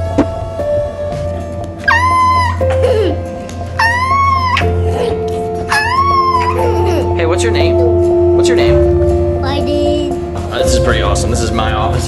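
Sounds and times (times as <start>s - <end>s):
background music: 0.0s - 12.0s
high-pitched playful squeals: 1.8s - 2.8s, 3.8s - 5.1s, 5.7s - 7.2s.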